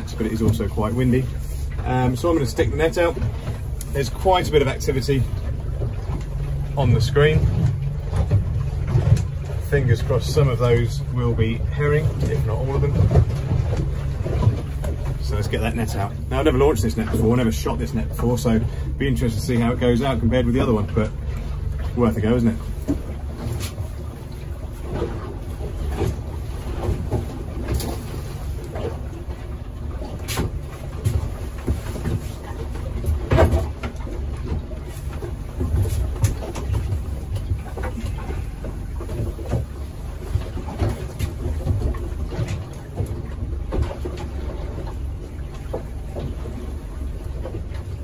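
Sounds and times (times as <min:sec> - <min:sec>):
wind and sea rumble: 0:00.0 - 0:48.0.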